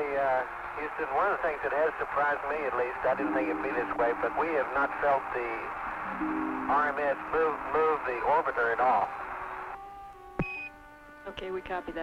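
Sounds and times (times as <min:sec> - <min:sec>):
radio hiss: 0:00.0 - 0:09.8
faint steady hum: 0:00.0 - 0:12.0.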